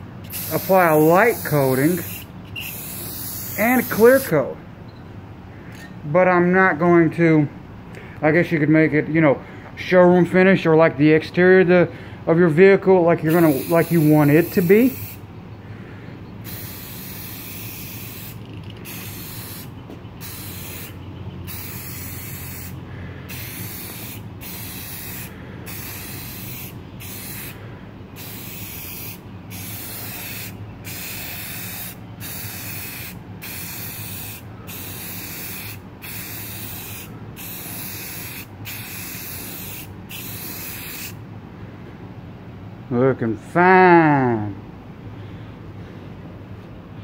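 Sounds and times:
steady low hum: 0.0 - 43.4
aerosol can spraying hiss: 0.3 - 4.3, 13.3 - 15.2, 16.5 - 27.6, 28.2 - 41.2.

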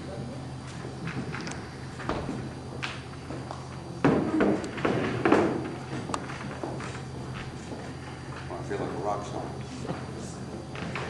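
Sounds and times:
low electrical hum: 0.0 - 11.0
taps and knocks of stage handling: 2.0 - 7.8.

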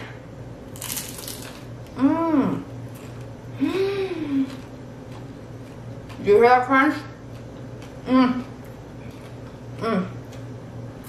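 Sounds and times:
crunch of biting crisp food: 0.7 - 1.7
person humming mmm: 2.0 - 2.7, 3.6 - 4.6.

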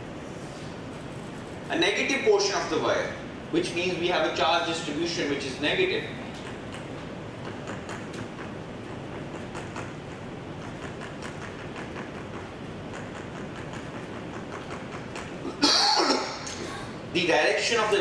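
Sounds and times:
man coughing: 15.4 - 16.9.

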